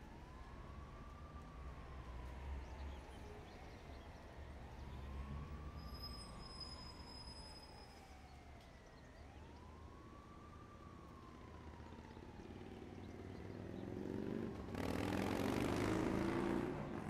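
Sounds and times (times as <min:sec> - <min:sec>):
wailing siren-like tones: 0:00.0 - 0:13.6.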